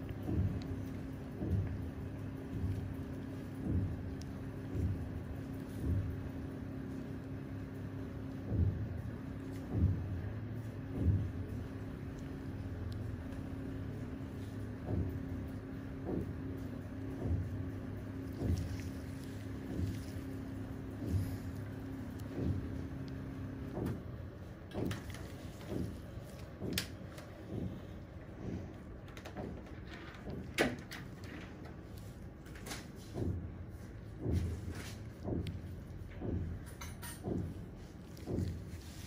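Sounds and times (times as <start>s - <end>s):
low droning hum: 0.0s - 39.0s.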